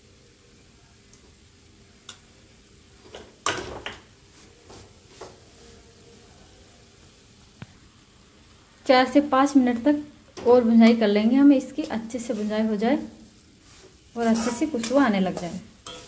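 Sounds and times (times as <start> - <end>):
steel spoon scraping a pan: 11.8 - 16.0.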